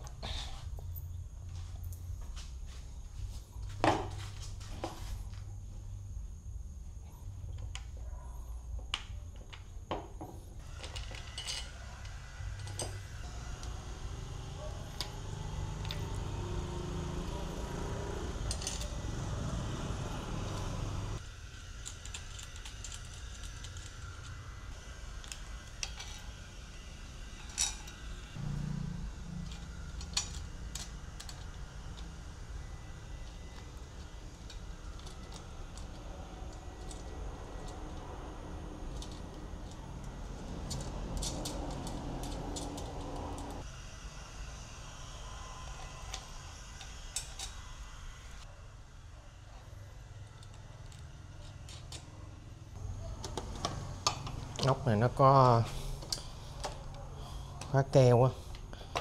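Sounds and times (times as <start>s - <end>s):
small metal parts clinking: 10.7s - 11.8s, 18.4s - 19.1s, 20.5s - 24.4s, 27.4s - 28.2s, 29.4s - 32.4s, 33.1s - 43.6s.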